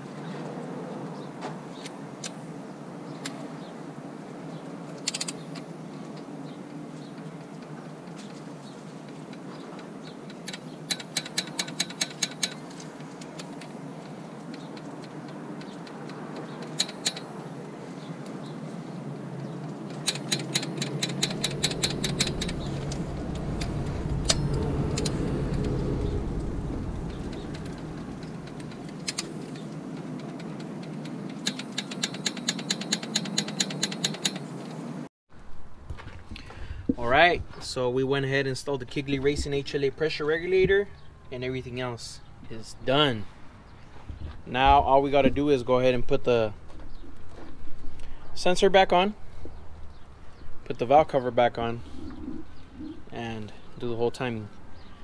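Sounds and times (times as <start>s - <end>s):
low rumble: 21.1s - 29.0s.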